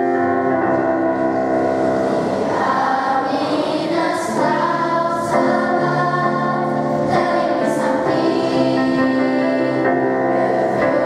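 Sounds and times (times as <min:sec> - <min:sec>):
electronic keyboard: 0:00.0 - 0:11.0
girls' choir singing: 0:00.0 - 0:11.0.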